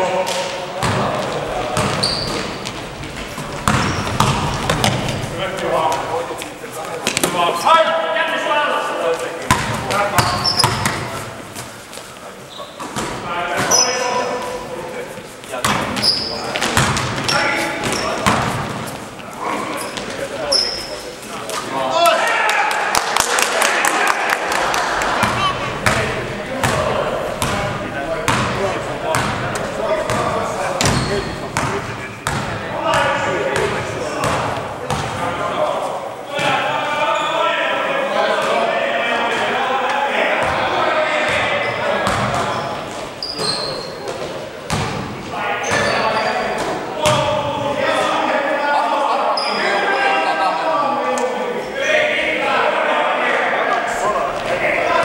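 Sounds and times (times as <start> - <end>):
players calling out: 0.0 - 55.0
sneakers squeaking: 0.4 - 7.4, 9.1 - 21.7, 25.2 - 35.2, 36.4 - 37.5, 40.4 - 47.3, 49.3 - 49.8
basketball bouncing on court floor: 0.8 - 5.3, 9.5 - 11.2, 15.6 - 18.8, 25.2 - 27.7, 28.3 - 35.2, 42.0 - 42.5, 44.1 - 45.1, 47.0 - 47.3.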